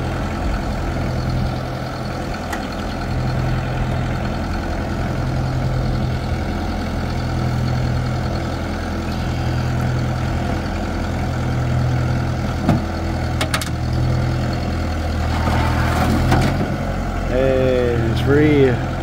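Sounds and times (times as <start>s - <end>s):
tractor engine idling: 0.0s - 19.0s.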